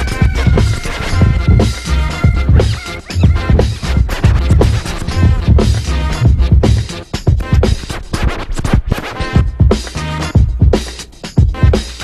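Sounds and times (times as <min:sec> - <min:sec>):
record scratches: 0:00.0 - 0:11.0
bass-heavy hip hop beat: 0:00.0 - 0:12.0.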